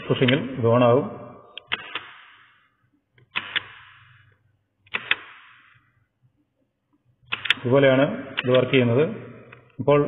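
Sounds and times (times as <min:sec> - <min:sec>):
relay and switch clicking: 0:04.9 - 0:05.4, 0:07.3 - 0:07.6.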